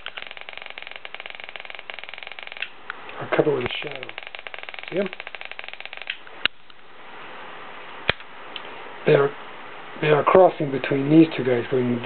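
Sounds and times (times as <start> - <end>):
stun gun spark crackle: 0.0 - 6.6
faint hiss: 0.0 - 12.0.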